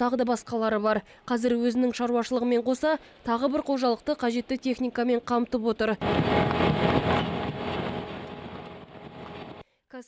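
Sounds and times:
harvester conveyor rumble and clatter: 6.0s - 9.6s.

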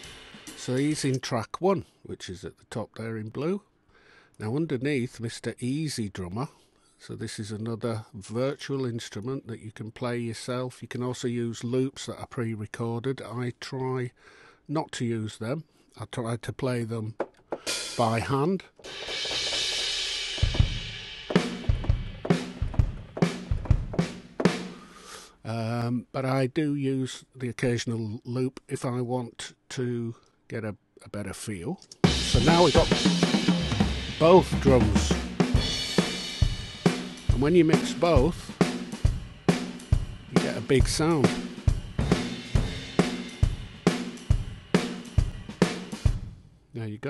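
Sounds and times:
kick and snare drum beat: 0.0s - 1.2s, 18.8s - 24.8s, 32.0s - 46.4s.

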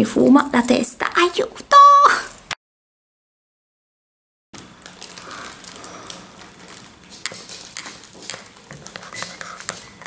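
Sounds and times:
metal spoon stirring in mug: 7.0s - 10.0s.

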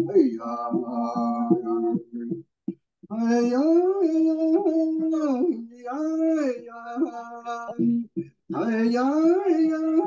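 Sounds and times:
person singing long notes: 3.1s - 10.0s.

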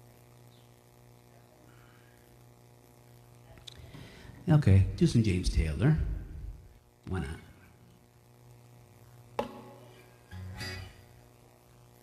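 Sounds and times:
guitar handling click: 9.4s - 9.8s
guitar strings ringing: 9.4s - 11.1s
soft guitar strum: 9.4s - 11.1s.

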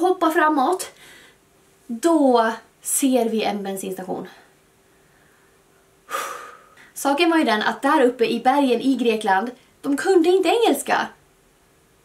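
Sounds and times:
woman breathing in: 1.0s - 1.4s, 4.8s - 6.9s.

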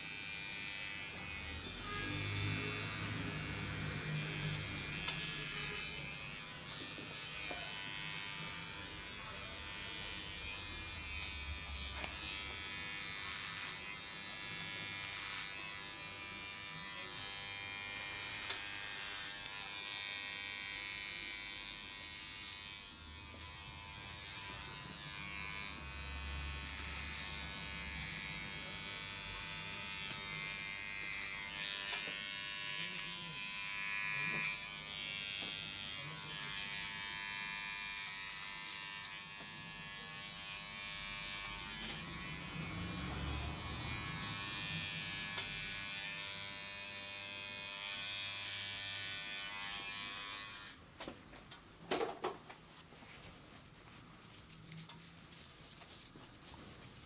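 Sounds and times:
electric hair clippers buzzing: 0.0s - 50.8s.

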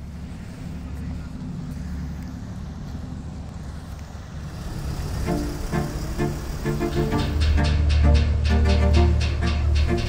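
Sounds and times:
ferry engine rumble: 0.0s - 10.0s.

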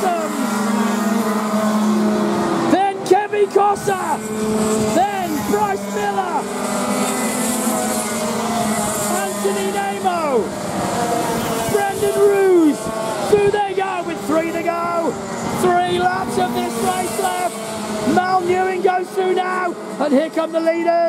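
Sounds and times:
karts passing by: 0.0s - 21.0s
racing kart engines: 0.0s - 21.0s.

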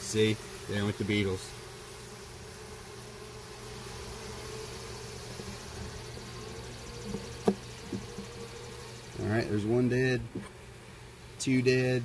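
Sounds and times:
honeybees humming: 0.0s - 12.0s
hive tool tapping on wood box: 6.9s - 8.4s, 10.2s - 10.6s.

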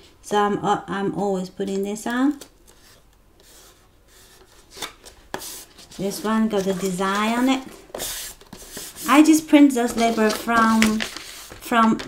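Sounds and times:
paper label rubbing and rustling: 2.7s - 11.9s.

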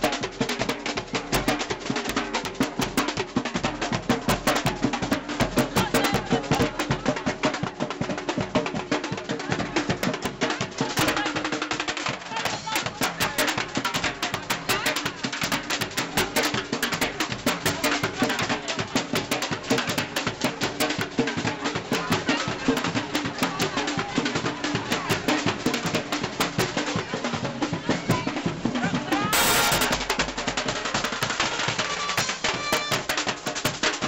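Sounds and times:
marching drums playing: 0.0s - 34.0s
loud noisy burst: 29.3s - 30.1s.

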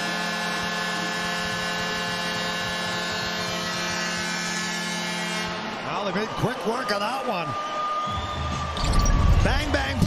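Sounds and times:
man's voice: 9.4s - 10.0s.

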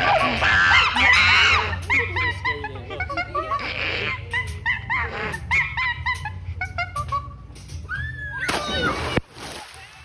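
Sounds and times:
high yelping calls: 0.0s - 6.4s
low steady bass: 0.0s - 9.2s.

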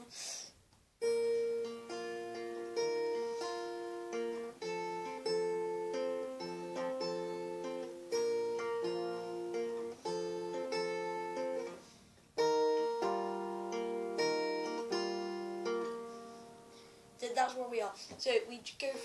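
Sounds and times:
acoustic guitar fingerpicked: 1.0s - 18.4s.

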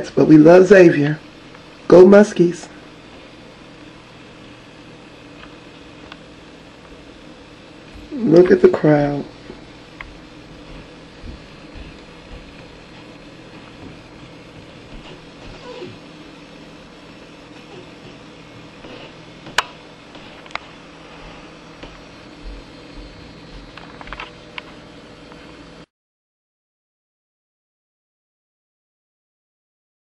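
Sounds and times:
recording hum and hiss: 0.0s - 25.9s.

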